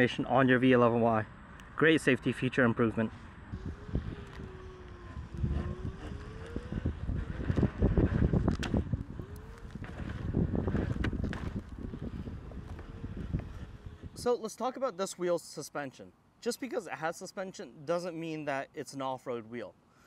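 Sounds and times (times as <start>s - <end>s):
electric motor whine: 3.5s - 14.2s
wind noise on microphone: 3.5s - 14.4s
wheel rolling on concrete: 3.6s - 14.0s.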